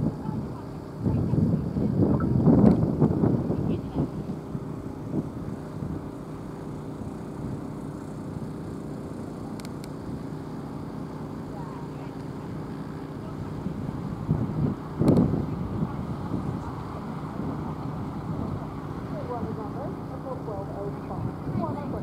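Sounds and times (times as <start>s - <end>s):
engine-like hum: 0.0s - 22.0s.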